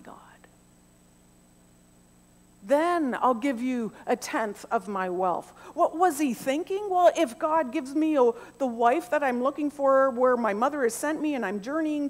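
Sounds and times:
woman speaking: 0.0 - 0.5, 2.6 - 12.0
faint steady hum: 0.0 - 12.0.

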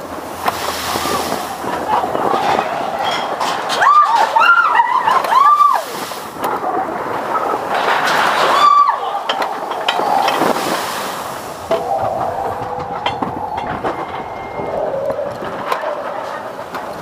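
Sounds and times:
roller coaster rumbling on track: 0.0 - 17.0
steady whine: 11.2 - 16.9
high squeal: 11.8 - 15.4.

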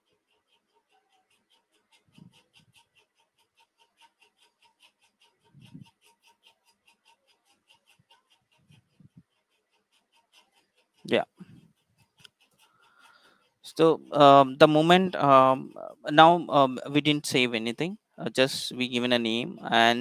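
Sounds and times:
faint rapid even ticking: 0.0 - 20.0.

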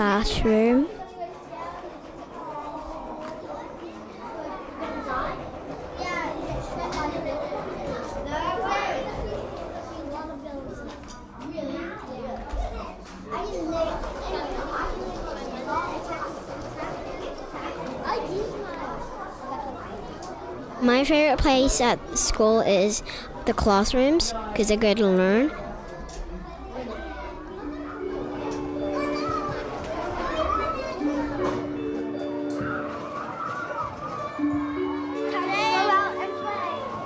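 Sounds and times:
children playing and chattering: 0.0 - 37.0
held musical chord: 34.5 - 37.0.

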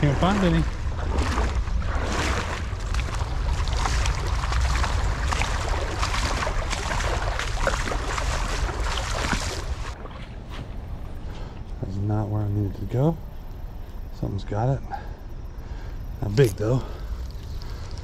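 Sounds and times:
water splashing with steps: 0.0 - 10.4.

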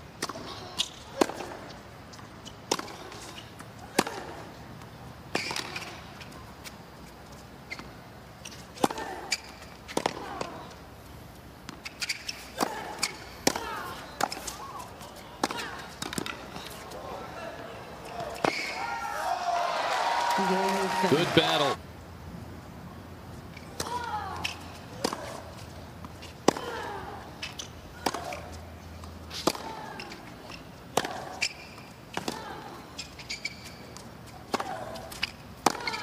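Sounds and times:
tennis ball struck by rackets: 0.2 - 1.7, 2.6 - 3.3, 3.9 - 4.5, 8.8 - 10.6, 11.6 - 14.6, 15.4 - 16.8, 23.7 - 30.2, 30.9 - 32.5, 34.5 - 36.0
crowd applause: 19.3 - 21.8.

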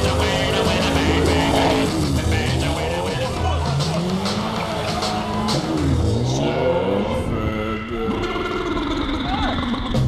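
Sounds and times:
rock music: 0.0 - 8.5
car engines revving: 0.0 - 10.0.

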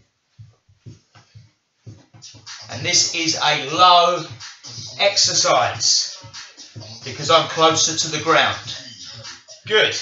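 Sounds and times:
feet thumping on floor mat: 0.3 - 2.4.

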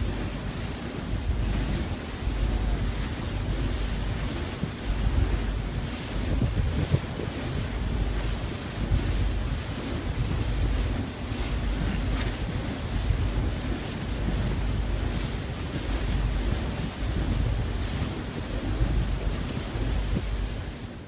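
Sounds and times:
churning sea water along hull: 0.0 - 21.0
wind buffeting microphone: 0.0 - 21.0.

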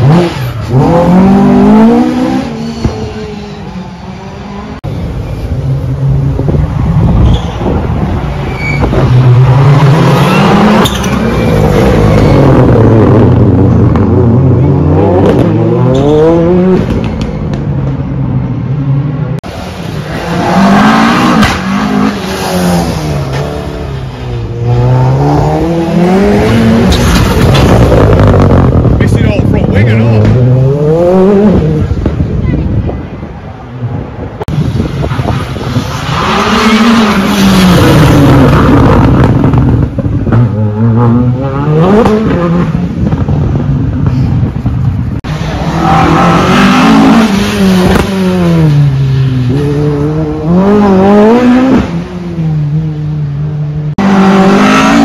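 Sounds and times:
rally car engines passing: 0.0 - 55.0.

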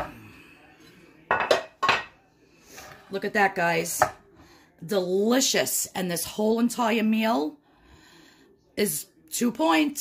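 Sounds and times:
ceramic dish knocking on counter: 1.3 - 2.1.

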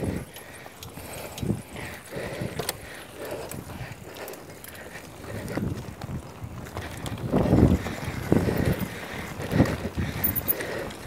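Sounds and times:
low rumbles of bike: 0.0 - 11.0
wind buffeting microphone: 0.0 - 11.0.

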